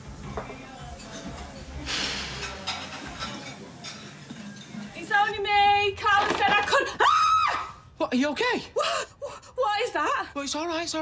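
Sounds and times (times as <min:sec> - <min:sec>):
woman screaming: 0:06.8 - 0:07.8.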